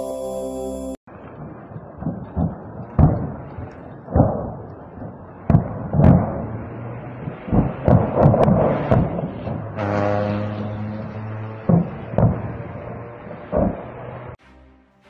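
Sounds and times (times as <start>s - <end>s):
rumbling fire: 1.1s - 9.8s, 10.8s - 14.4s
explosions booming and banging: 1.2s - 9.8s, 11.6s - 14.1s.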